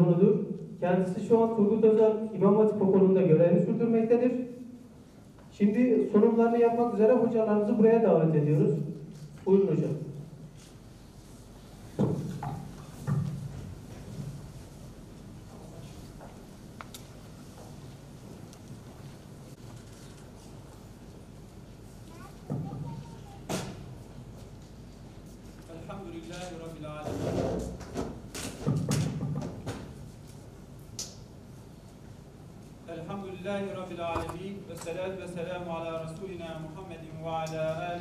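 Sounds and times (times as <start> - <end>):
microphone handling thumps: 34.1 - 34.5.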